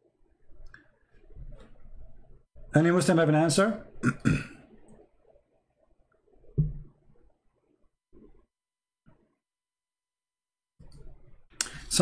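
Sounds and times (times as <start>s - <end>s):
man clearing his throat: 4.0s - 4.6s.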